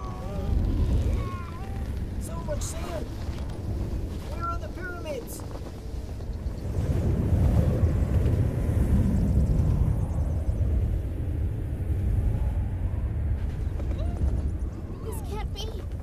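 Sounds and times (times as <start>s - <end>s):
deep rumble: 0.0s - 16.0s.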